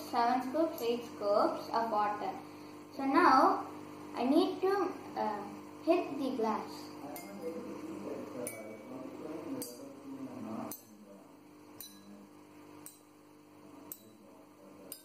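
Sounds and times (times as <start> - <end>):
wooden stick striking water glasses: 11.8 - 12.2.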